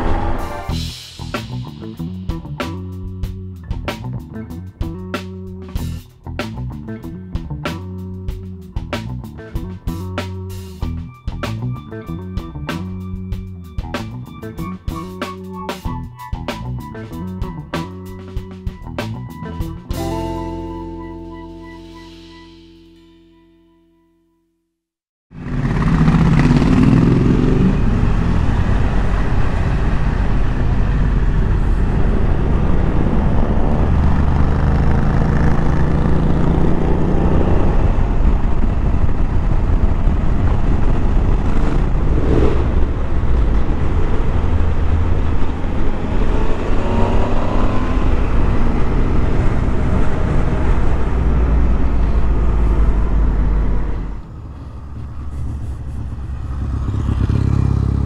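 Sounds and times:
motorcycle engine revving: 0:25.3 - 0:58.0
wind noise: 0:26.5 - 0:35.8, 0:36.6 - 0:57.5.

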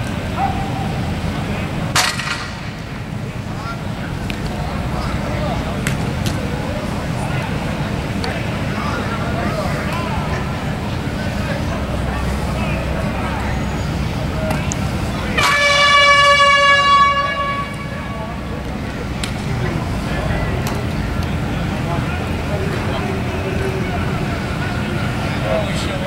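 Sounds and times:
faint distant voices: 0:00.0 - 0:26.0
air horn: 0:15.4 - 0:18.4.

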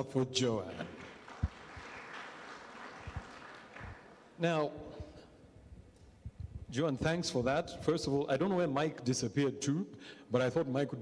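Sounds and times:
audience applauding: 0:00.8 - 0:04.3.

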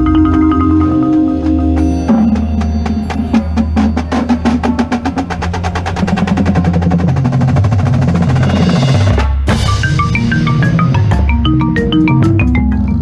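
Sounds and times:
marimba played with mallets: 0:00.0 - 0:06.8, 0:09.5 - 0:13.0.

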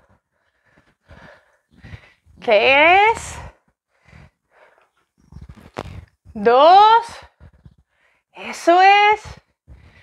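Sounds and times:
woman breathing under exertion: 0:00.0 - 0:02.4.

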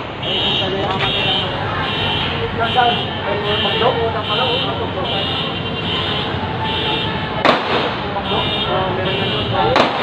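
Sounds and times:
street and traffic noise: 0:00.0 - 0:10.0.

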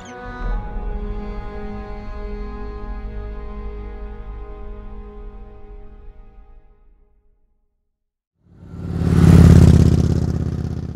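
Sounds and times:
motorcycle engine passing: 0:08.5 - 0:10.9.

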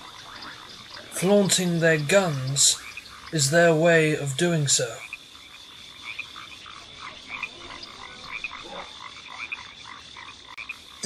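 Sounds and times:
frogs croaking: 0:00.0 - 0:11.0.

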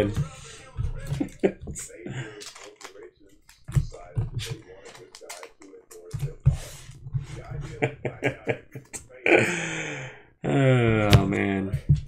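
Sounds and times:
cards clicking and rustling: 0:00.0 - 0:07.5.

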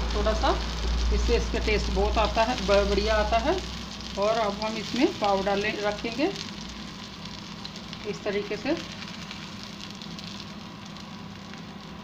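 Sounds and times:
butter sizzling on hot pan: 0:00.0 - 0:12.0.

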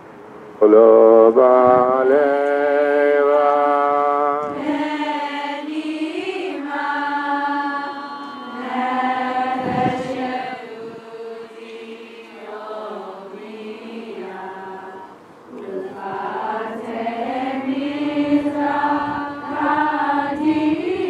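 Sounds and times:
group singing in unison: 0:01.9 - 0:21.0.

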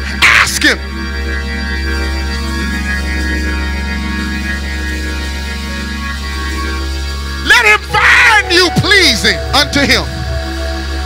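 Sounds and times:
keyboard playing organ chords: 0:00.0 - 0:11.0.

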